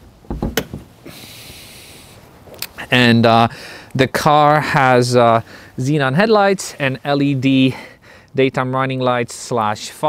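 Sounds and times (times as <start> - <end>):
steady hiss: 0.0 - 10.0
latch click: 0.3 - 0.8
soft thumps on trunk lid: 0.3 - 0.9.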